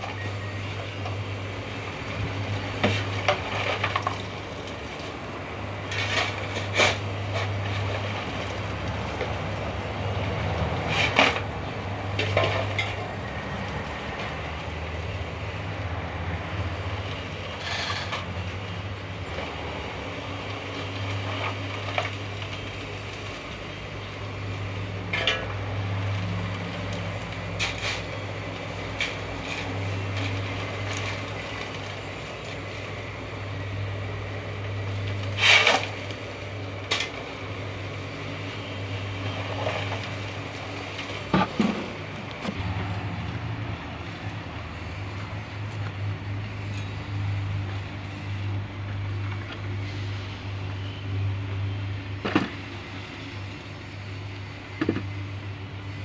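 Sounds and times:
concrete mixer humming: 0.0s - 56.0s.

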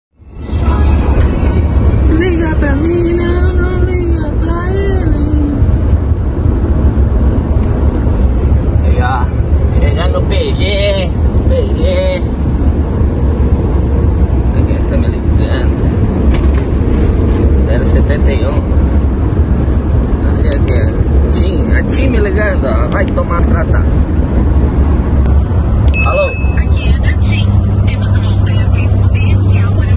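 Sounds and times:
road noise: 0.1s - 29.9s
truck engine rumble: 0.1s - 29.9s.

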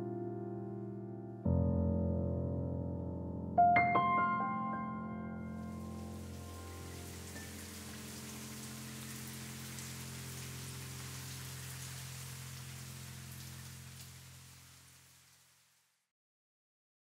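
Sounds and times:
low chord background music: 0.0s - 11.8s
light rain on water: 5.5s - 16.1s.

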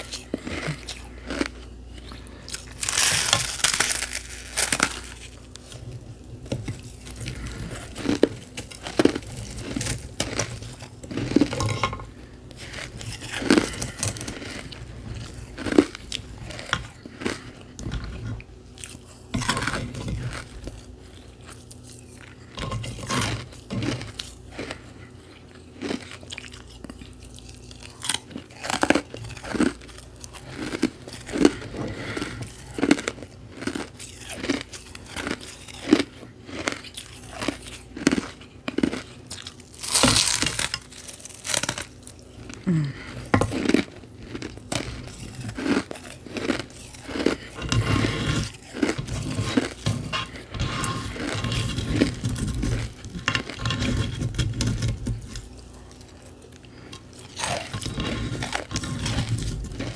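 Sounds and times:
ice being crunched and chewed: 0.0s - 59.9s.

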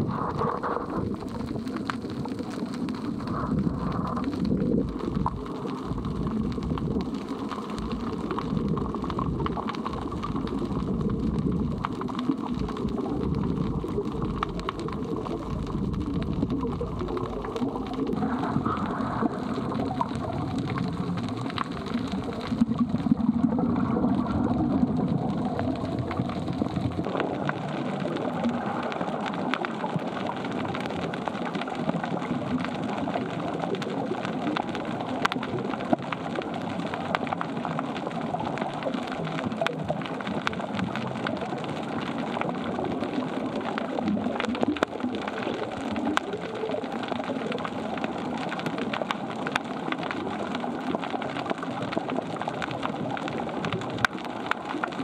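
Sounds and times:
low rumble: 0.0s - 27.6s
underwater crackling hiss: 0.0s - 55.0s.

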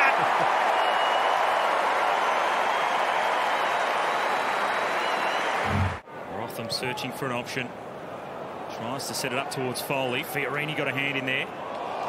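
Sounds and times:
stadium crowd cheering: 0.0s - 7.4s, 8.0s - 12.0s
whistling in crowd: 0.6s - 6.0s
low thump: 5.7s - 6.0s.

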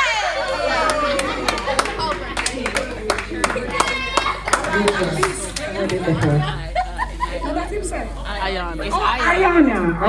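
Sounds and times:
handclaps: 0.8s - 6.1s.

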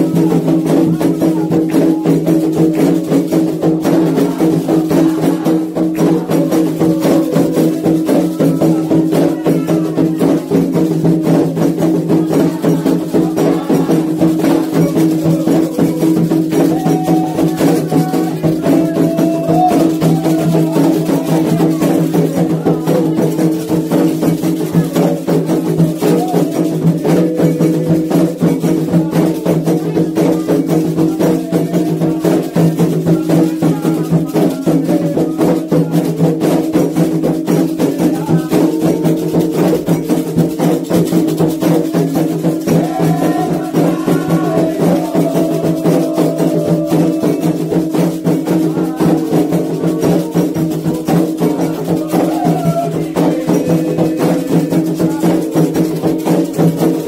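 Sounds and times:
sustained singing voices: 0.0s - 40.0s, 41.6s - 56.9s
hand drums playing rhythm: 0.0s - 57.0s.

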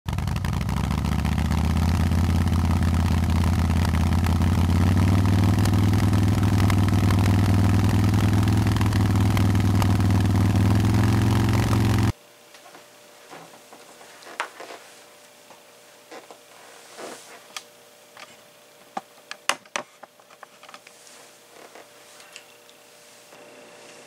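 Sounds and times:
motorcycle engine running: 0.0s - 12.2s.

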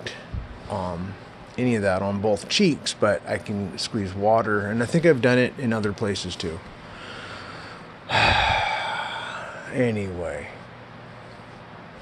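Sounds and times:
loud breathy exhale: 7.0s - 9.5s.

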